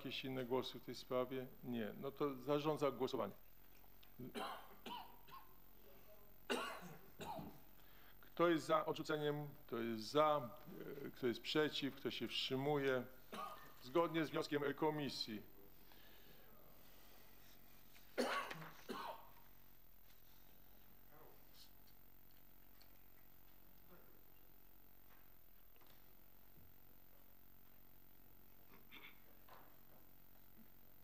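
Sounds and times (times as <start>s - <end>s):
man clearing his throat: 4.2s - 5.6s, 6.5s - 7.6s, 13.2s - 13.8s, 18.1s - 19.4s, 28.7s - 29.4s
man coughing: 4.2s - 5.6s, 6.5s - 7.6s, 13.2s - 13.8s, 18.1s - 19.3s, 28.7s - 29.4s.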